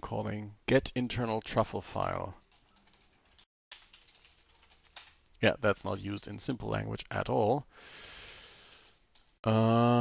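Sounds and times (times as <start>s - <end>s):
keyboard typing: 2.4s - 6.2s, 8.6s - 9.4s.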